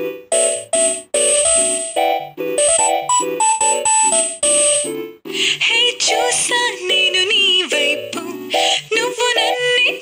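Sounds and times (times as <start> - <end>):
instrumental backing: 0.0 - 5.2.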